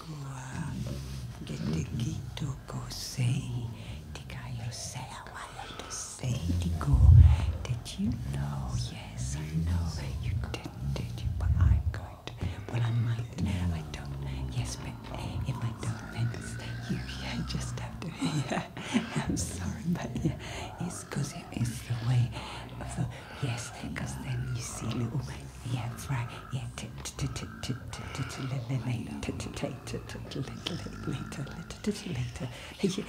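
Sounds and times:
whispers and hissing breath: 0:00.0 - 0:33.0.

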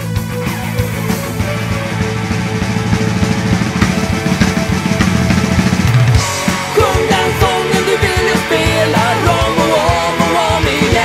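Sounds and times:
band music: 0:00.0 - 0:11.0
drum kit fast steady beat: 0:00.0 - 0:11.0.

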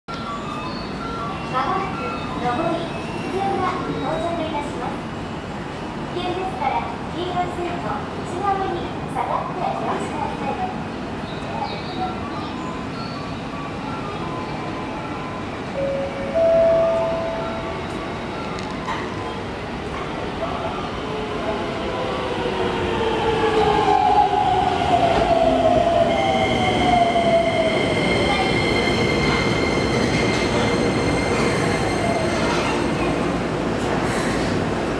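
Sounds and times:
electronic chime melody: 0:15.3 - 0:18.3.

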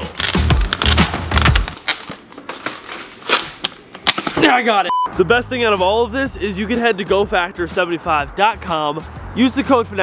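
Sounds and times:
plastic film peeling and crinkling: 0:00.0 - 0:04.4.

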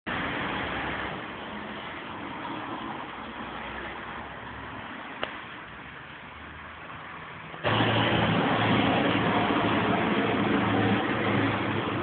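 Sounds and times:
vehicle engine running: 0:07.6 - 0:12.0.

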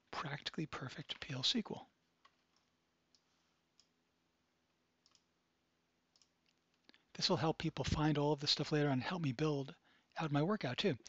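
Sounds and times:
faint computer clicks: 0:05.0 - 0:05.3.

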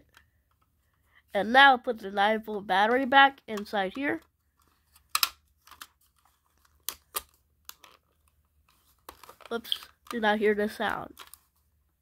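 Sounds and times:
rustles of handling: 0:04.4 - 0:10.2
sharp plastic clicks: 0:05.0 - 0:05.9.

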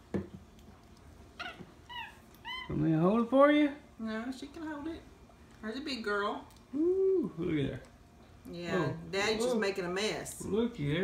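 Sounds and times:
monkey squeaking: 0:01.4 - 0:02.7.

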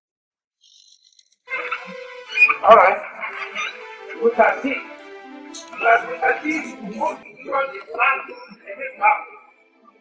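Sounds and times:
background music with voice: 0:01.5 - 0:10.0.

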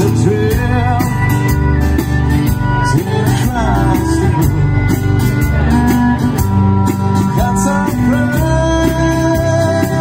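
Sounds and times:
man singing: 0:00.0 - 0:01.8, 0:02.6 - 0:10.0
live folk-rock band playing: 0:00.0 - 0:10.0.

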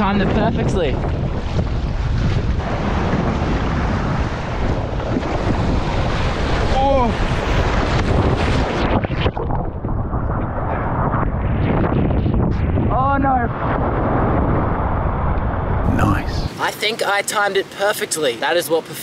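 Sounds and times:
wind buffeting microphone: 0:00.0 - 0:16.7
surf breaking: 0:00.0 - 0:17.8
water splashing over kayak: 0:01.1 - 0:10.7.

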